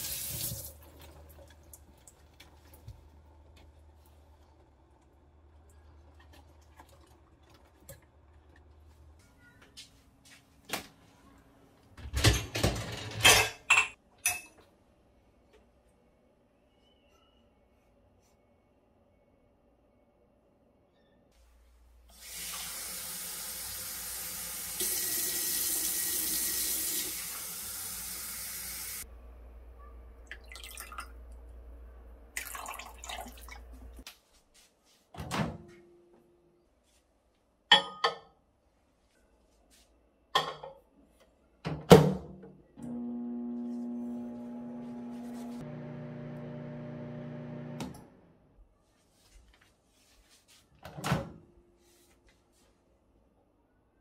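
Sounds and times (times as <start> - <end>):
faucet running into sink: 0.0 - 1.8
microwave oven humming: 42.8 - 48.4.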